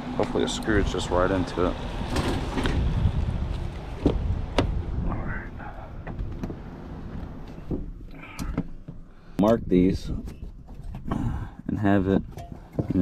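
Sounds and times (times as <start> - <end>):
low rumble: 0.8 - 8.4.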